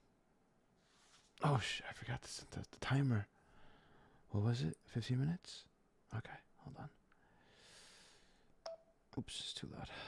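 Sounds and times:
faint breath: 3.4 - 4.3, 7.2 - 8.6.

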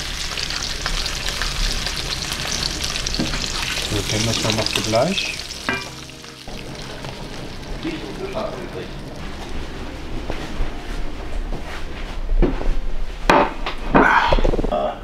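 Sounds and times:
fish sizzling in a pan: 0.0 - 9.6.

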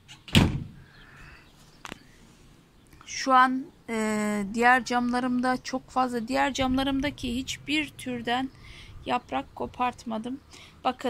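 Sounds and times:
sharp knock: 0.3 - 0.8.

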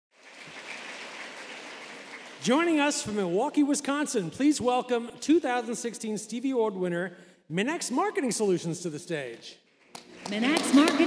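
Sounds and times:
audience applauding: 0.1 - 3.2, 10.0 - 11.0.

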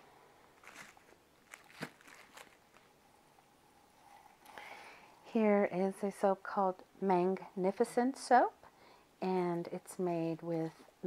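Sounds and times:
plastic-wrapped soap clicks and crinkles: 0.6 - 2.9.

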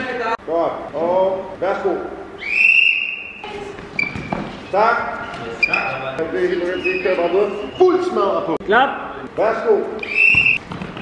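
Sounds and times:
referee's whistle blast: 2.4 - 3.4, 10.0 - 10.6
people talking: 4.7 - 10.0.

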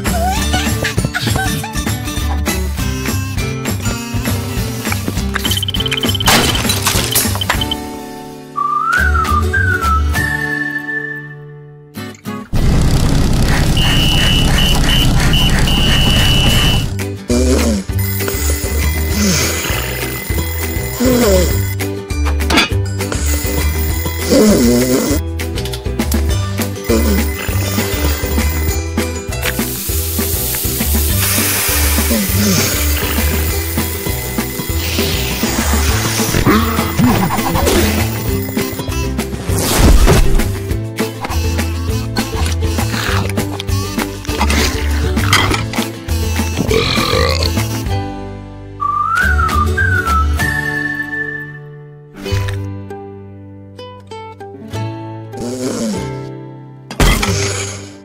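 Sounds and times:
background music: 0.0 - 12.6, 13.6 - 58.0
shattering crash: 6.2 - 7.5
sliding whistle-like melody: 8.5 - 11.6, 48.8 - 51.9
referee's whistle trill: 13.8 - 16.9
bacon sizzling in a frying pan: 29.7 - 31.8.

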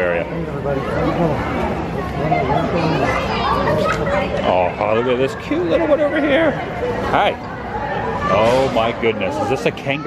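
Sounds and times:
people chattering: 0.0 - 10.0
children's voices: 0.8 - 5.7, 6.6 - 10.0.

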